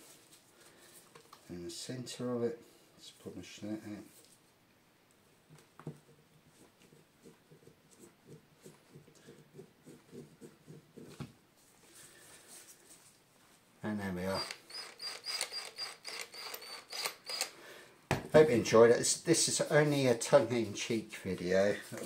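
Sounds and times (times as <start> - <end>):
polishing cloth rubbing: 6.5 - 13.1
drill chuck rapid clicking: 14.4 - 17.5
cordless drill whining: 14.4 - 17.6.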